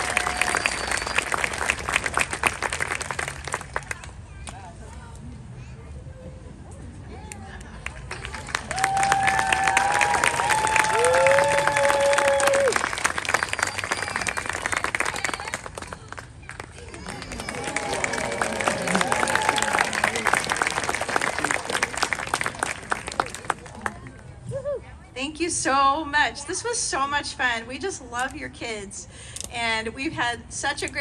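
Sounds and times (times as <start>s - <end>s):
audience cheering: 0.0s - 2.2s, 8.4s - 15.4s, 16.9s - 23.4s
audience applauding: 0.0s - 4.0s, 7.8s - 24.0s
long whoops: 8.7s - 12.8s, 17.5s - 20.0s.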